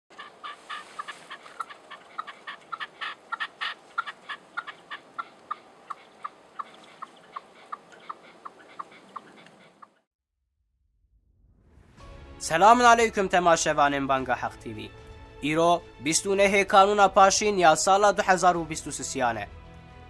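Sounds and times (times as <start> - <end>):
partridge calling: 0.1 - 10.1.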